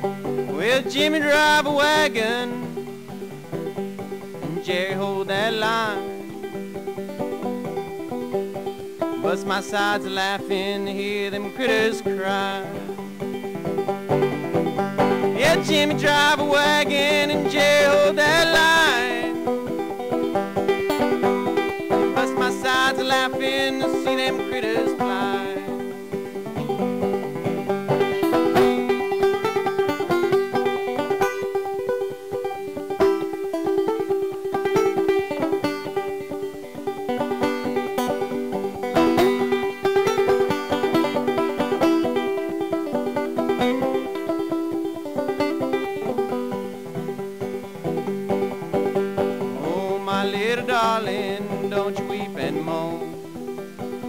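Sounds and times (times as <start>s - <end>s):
banjo picking over a drone: 0.0s - 54.0s.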